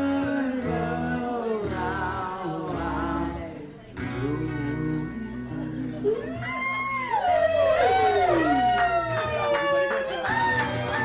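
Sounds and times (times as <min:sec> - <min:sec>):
bass line: 0:00.0 - 0:09.1.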